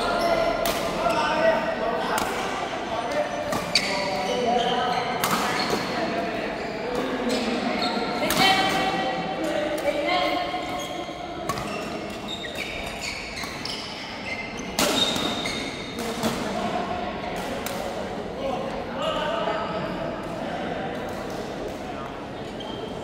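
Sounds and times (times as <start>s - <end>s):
court shoes squeaking: 0.0s - 1.4s, 2.2s - 9.0s, 9.8s - 16.4s, 22.4s - 23.0s.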